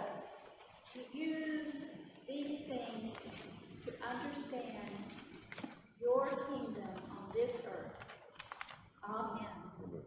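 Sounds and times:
person's voice: 0:09.0 - 0:10.0.

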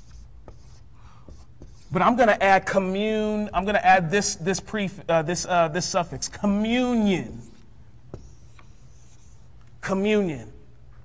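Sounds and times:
marker strokes on whiteboard: 0:00.0 - 0:02.4, 0:05.8 - 0:10.0
man talking: 0:01.9 - 0:07.6, 0:09.8 - 0:10.6.

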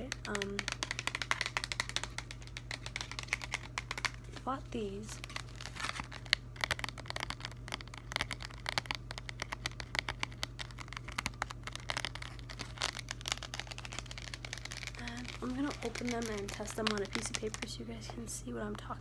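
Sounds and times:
fingernails tapping on plastic packaging: 0:00.0 - 0:04.2, 0:05.2 - 0:17.8
plastic crinkling: 0:00.0 - 0:19.0.

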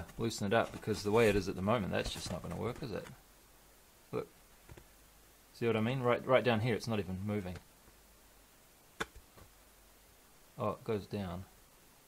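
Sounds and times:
foam handling noise: 0:00.0 - 0:03.2.

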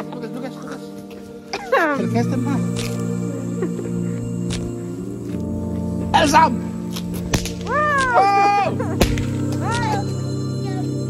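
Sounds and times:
background music with low notes: 0:00.0 - 0:11.0
sharp crack: 0:06.9 - 0:08.2, 0:09.0 - 0:09.9.

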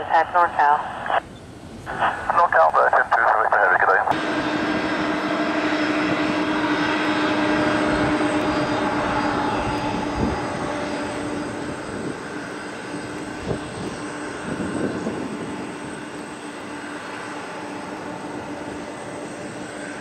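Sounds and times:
jet engines roaring: 0:00.0 - 0:20.0.

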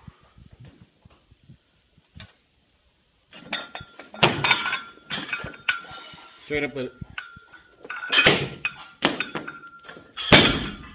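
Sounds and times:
barbell heavy thuds: 0:03.4 - 0:06.0, 0:07.9 - 0:10.9.

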